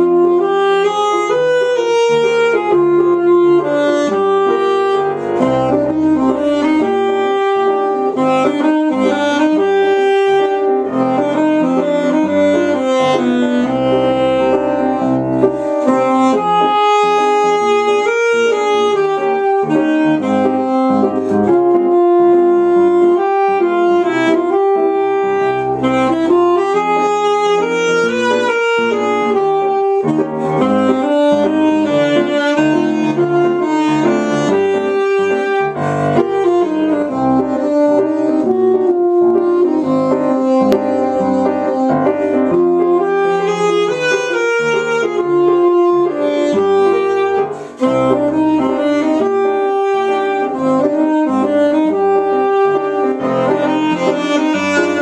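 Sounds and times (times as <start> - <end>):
alto saxophone waltz melody: 0.0 - 55.0
grand piano accompaniment: 0.0 - 55.0.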